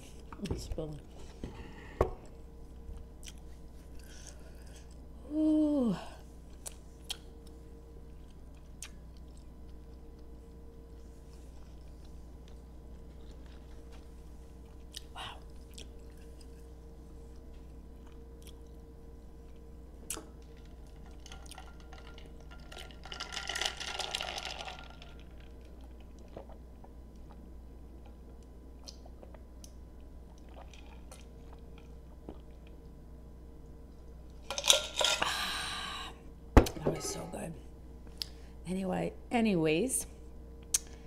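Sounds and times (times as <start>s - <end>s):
close-up chewing: 11.6s - 16.7s
soft mouth clicks: 40.7s - 41.0s.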